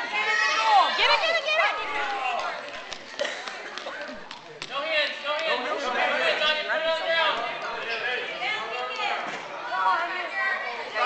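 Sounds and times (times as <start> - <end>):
children chattering and calling: 0.0 - 4.3, 5.5 - 11.0.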